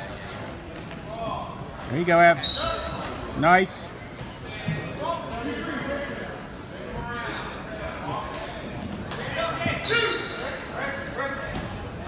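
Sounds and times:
distant voices echoing in gymnasium: 0.0s - 12.0s.

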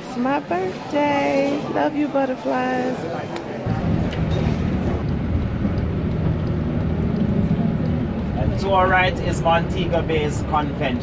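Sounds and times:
car road and engine rumble: 3.7s - 11.0s.

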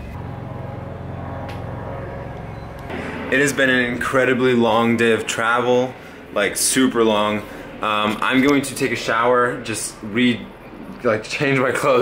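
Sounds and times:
machinery hum: 0.0s - 12.0s
road traffic: 0.0s - 12.0s.

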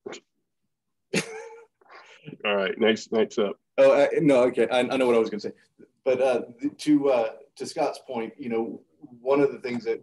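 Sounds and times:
man laughing: 1.1s - 1.8s.

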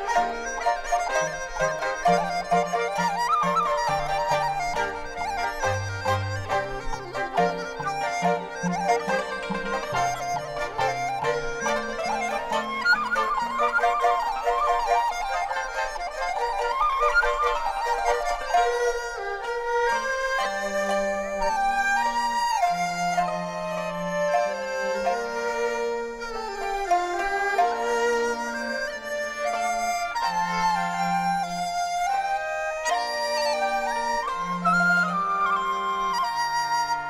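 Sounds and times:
bamboo flute melody: 0.0s - 37.0s
traditional ensemble accompaniment: 0.0s - 37.0s.

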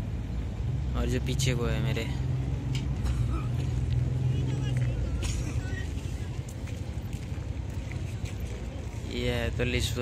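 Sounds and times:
faint voices of passers-by: 0.0s - 10.0s
vehicle engine humming: 0.0s - 10.0s.

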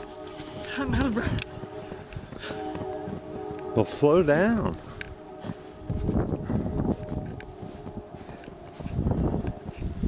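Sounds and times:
footsteps crunching through snow: 0.0s - 10.0s
wind rumbling on microphone: 0.0s - 10.0s.

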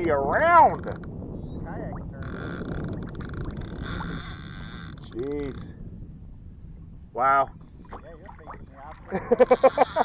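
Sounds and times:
water noise: 0.0s - 10.0s
wind noise on microphone: 0.0s - 10.0s.

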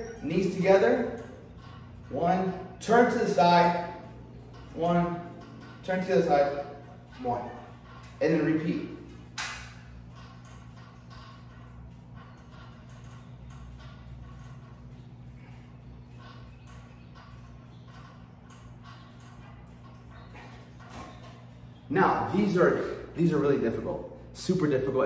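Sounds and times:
low electrical hum: 0.0s - 25.0s.

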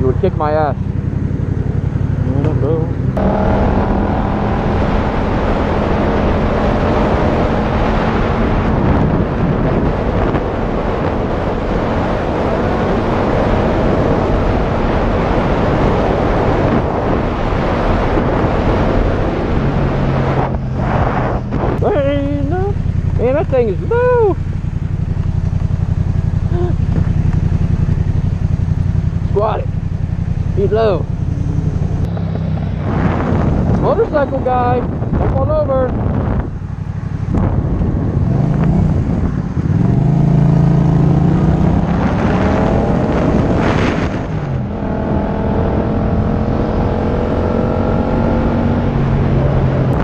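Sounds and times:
motorcycle engine running: 0.0s - 17.5s, 18.1s - 50.0s
wind rush on microphone: 0.0s - 50.0s.

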